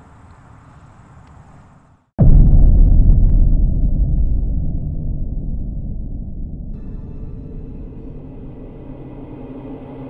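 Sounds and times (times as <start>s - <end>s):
low hums: 2.2s - 10.0s
low rumbling drone: 2.2s - 10.0s.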